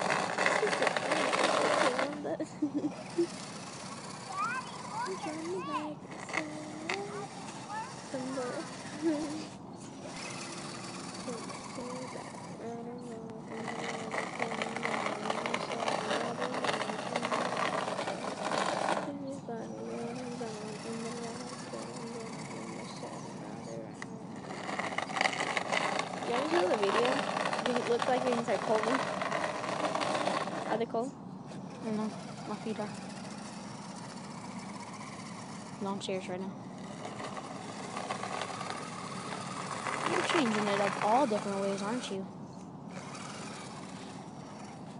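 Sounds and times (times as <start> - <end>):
small electric motor and gearbox: 0.0 - 44.9.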